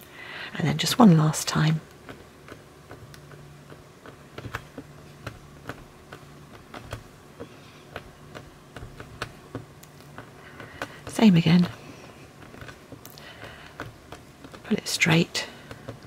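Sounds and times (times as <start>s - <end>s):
fingers tapping clay on tile: 1.9s - 16.0s.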